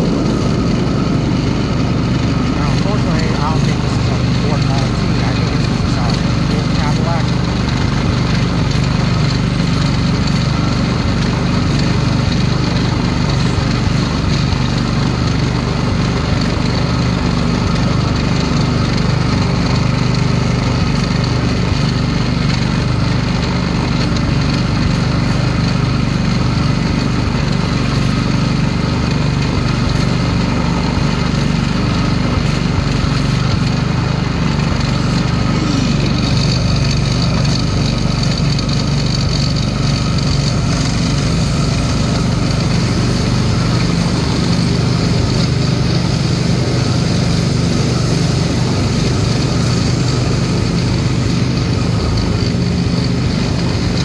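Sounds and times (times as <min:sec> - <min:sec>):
small engine running: 0:00.0 - 0:54.0.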